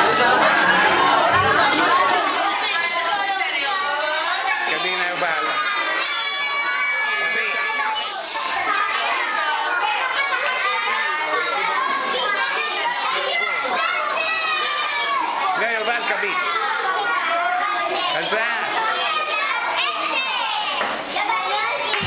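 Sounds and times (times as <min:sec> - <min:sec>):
young children chattering: 0:00.0 - 0:22.0.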